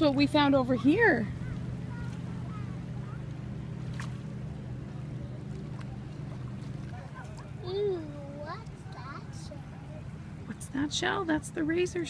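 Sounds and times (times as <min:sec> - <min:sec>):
faint outdoor noise: 0:00.0 - 0:12.0
steady low hum: 0:00.0 - 0:12.0.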